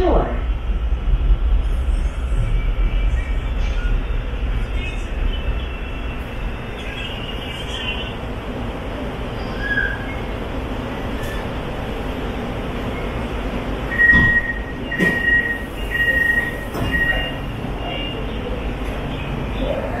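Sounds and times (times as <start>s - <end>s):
train car hum: 0.0s - 20.0s.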